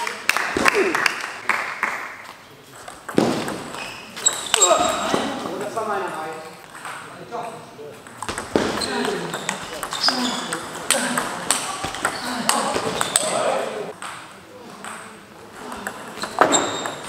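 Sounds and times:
voices in a hall: 0.0 - 17.0.

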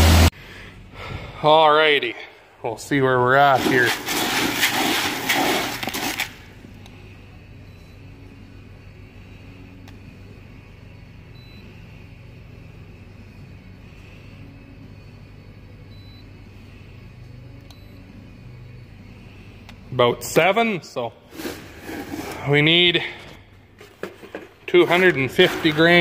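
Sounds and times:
low machine hum: 0.0 - 5.5, 6.3 - 26.0
dried beans rattling into plastic pail: 3.5 - 6.4, 24.1 - 26.0.

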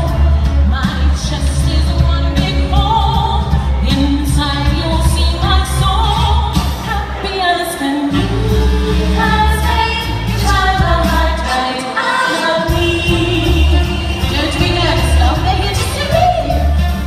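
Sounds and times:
woman singing into microphone: 0.0 - 17.0
backing track with bass beat: 12.7 - 17.0.

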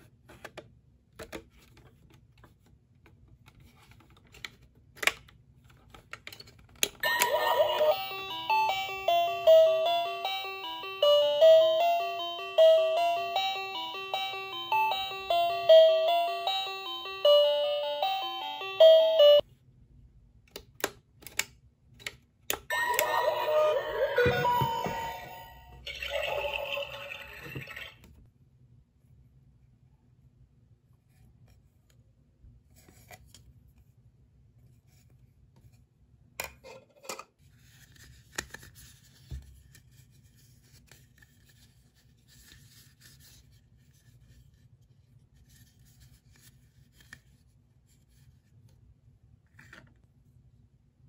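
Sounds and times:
tinny electronic jingle: 7.0 - 19.4, 22.7 - 27.9.

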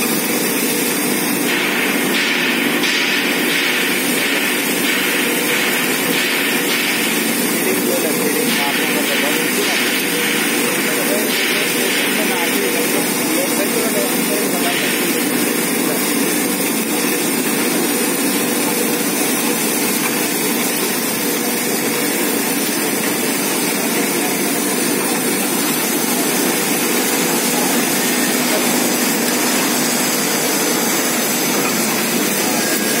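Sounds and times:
pulveriser grinding plastic: 3.8 - 33.0.

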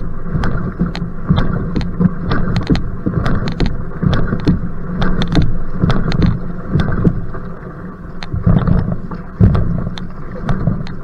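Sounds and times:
paddle splashing water: 0.0 - 11.0
wind rumble on microphone: 0.0 - 11.0.

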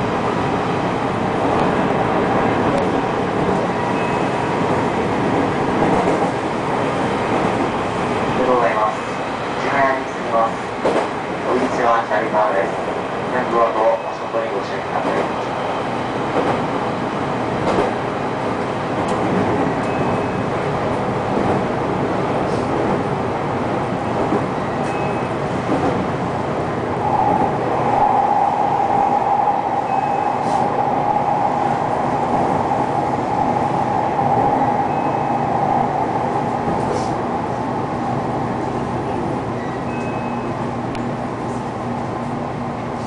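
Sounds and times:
train wheels running on rails: 0.0 - 43.0.

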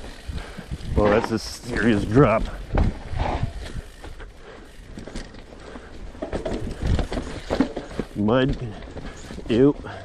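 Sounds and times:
bike knocking and rattling: 0.0 - 10.0
mountain bike rolling on dirt trail: 0.0 - 10.0.

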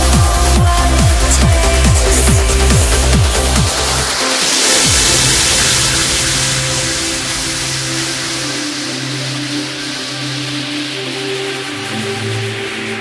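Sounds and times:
trance kick drum: 0.0 - 12.2
held synth chords: 1.4 - 12.9
white-noise wash: 3.8 - 11.8.

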